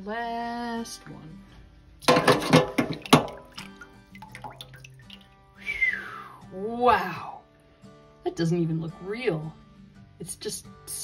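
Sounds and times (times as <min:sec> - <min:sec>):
faint background music: 0:00.0 - 0:11.0
person whistling falling in pitch: 0:05.6 - 0:06.3.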